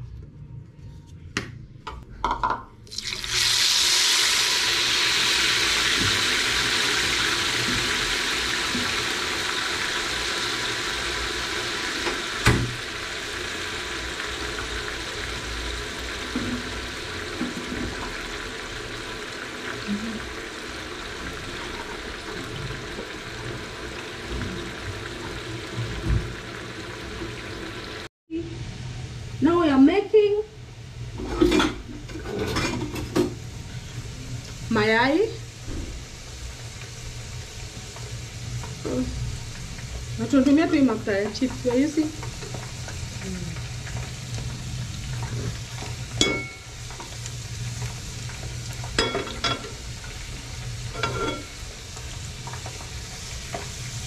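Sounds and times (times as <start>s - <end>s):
chips sizzling in hot oil: 2.9s - 28.1s, 34.4s - 54.0s.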